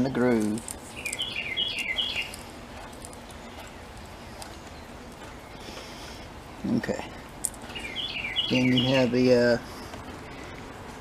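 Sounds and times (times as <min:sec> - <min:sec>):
bird chirping: 0:00.4 - 0:10.8.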